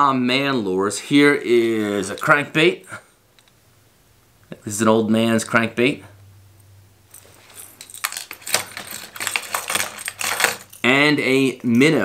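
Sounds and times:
fishing lures clinking: 0:07.2 - 0:11.0.

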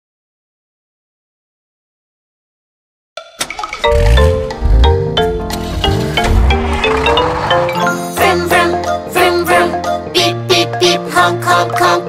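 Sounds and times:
bright xylophone notes: 0:03.2 - 0:10.0
deep bass thumps: 0:04.0 - 0:07.0.

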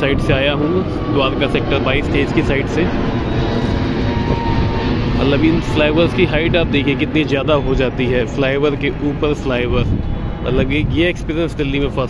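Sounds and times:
vehicle road and wind noise: 0:00.0 - 0:12.0.

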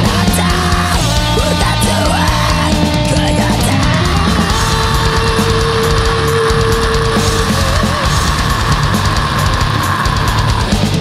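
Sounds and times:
distorted electric guitars: 0:00.0 - 0:11.0
drums playing loudly: 0:00.0 - 0:11.0.

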